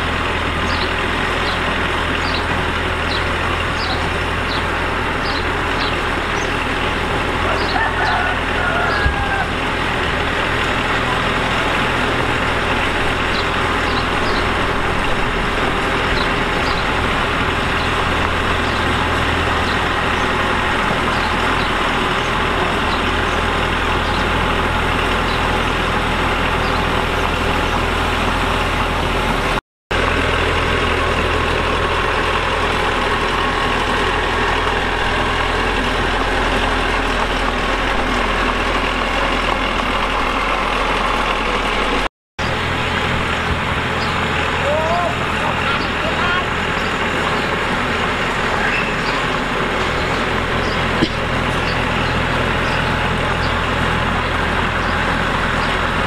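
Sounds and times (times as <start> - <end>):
dozer diesel engine under load: 0.0 - 56.0.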